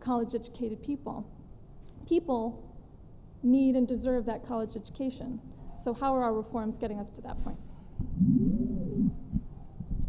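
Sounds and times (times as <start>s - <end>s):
low thumps: 8.0s - 10.0s
person humming: 8.2s - 9.5s.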